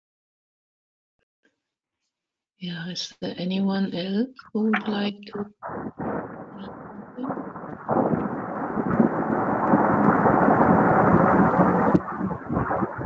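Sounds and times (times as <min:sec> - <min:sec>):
loud rushing rumbling noise: 0:05.8 - 0:13.0.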